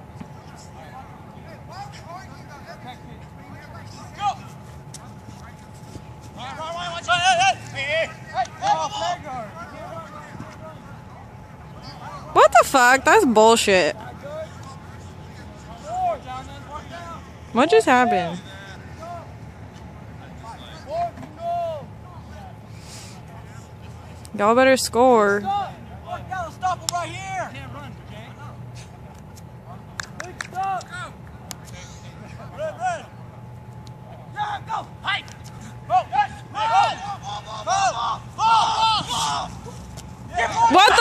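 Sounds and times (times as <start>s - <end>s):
outdoor background hiss: 0.0s - 41.0s
distant players shouting: 0.1s - 22.7s, 25.4s - 29.1s, 29.7s - 41.0s
men shouting: 34.3s - 41.0s.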